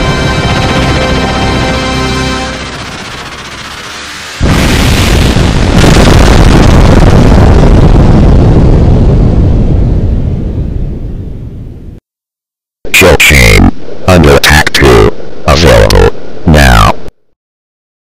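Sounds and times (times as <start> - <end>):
music: 0.0 - 3.9
jet aircraft roar: 0.0 - 5.0.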